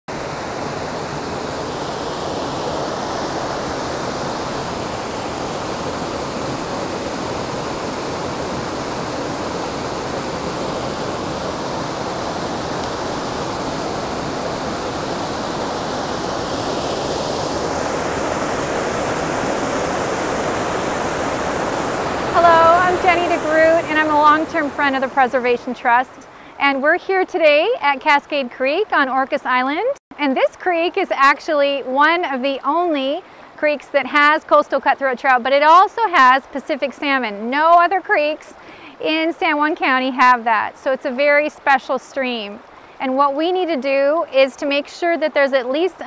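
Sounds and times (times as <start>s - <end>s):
waterfall rushing: 0.1s - 26.6s
woman speaking: 22.3s - 46.0s.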